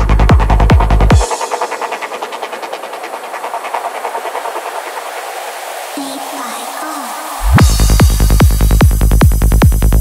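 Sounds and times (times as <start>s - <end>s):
pulsing synthesized noise texture: 0.6s - 9.9s.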